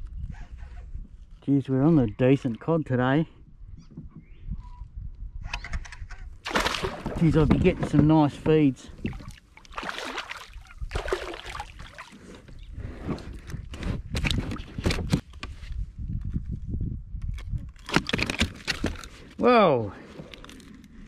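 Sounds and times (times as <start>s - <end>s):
water splashing: 6.4s - 7.4s, 9.0s - 12.3s.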